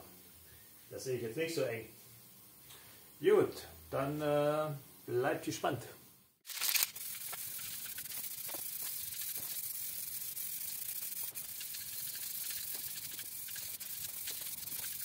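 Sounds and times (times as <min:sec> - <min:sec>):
aerosol spray can hissing: 0:06.5 - 0:15.0.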